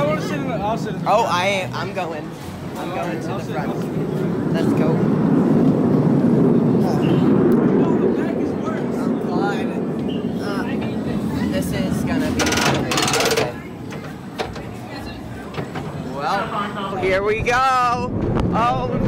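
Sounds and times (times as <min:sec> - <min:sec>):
chatter of riders: 0:00.0 - 0:19.0.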